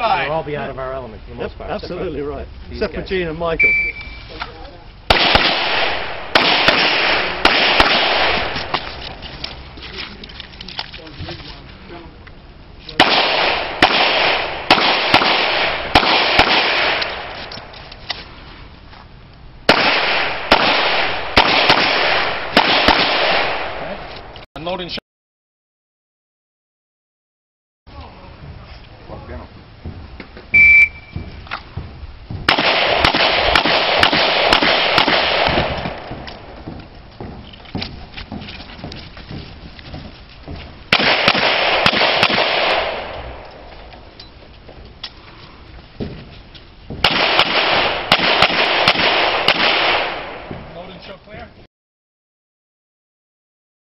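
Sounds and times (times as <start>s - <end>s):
handgun shots: 5.1s - 8.9s, 13.0s - 17.7s, 19.7s - 24.4s, 32.5s - 36.4s, 40.9s - 43.3s, 47.0s - 50.5s
handgun shots ringing: 13.0s - 17.6s, 32.5s - 36.2s, 40.9s - 43.2s.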